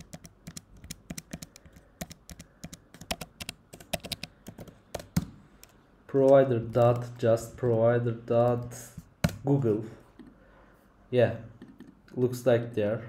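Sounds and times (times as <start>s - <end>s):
typing on computer keyboard: 0.0s - 9.4s.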